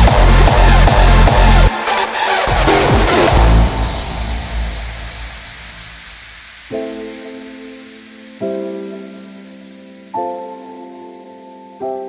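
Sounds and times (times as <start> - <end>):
low boom: 0.0 - 1.7, 2.5 - 6.6
hardstyle dance music: 0.0 - 7.8
hissing wash: 1.7 - 10.2.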